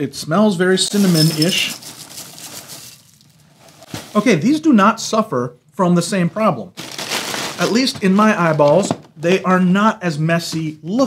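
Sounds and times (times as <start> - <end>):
cereal flakes pouring into bowl: 1.0 - 3.2.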